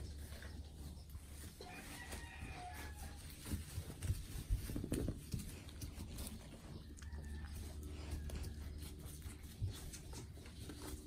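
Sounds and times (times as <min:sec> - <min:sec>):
faint farm animal call: 0:00.0 - 0:11.0.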